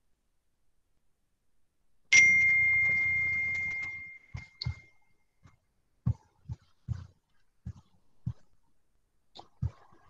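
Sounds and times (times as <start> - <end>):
ringing ding: 2.1 - 5.0.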